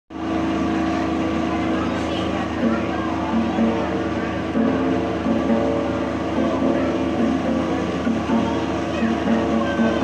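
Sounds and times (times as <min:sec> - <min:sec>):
vehicle engine idling: 0:00.1 - 0:10.0.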